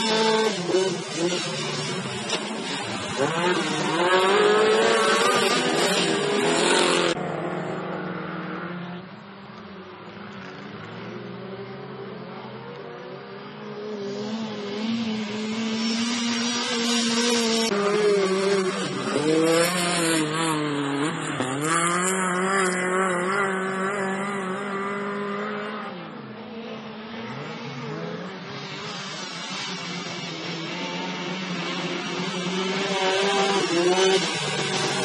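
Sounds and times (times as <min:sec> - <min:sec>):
race car engines revving: 0:00.0 - 0:35.0.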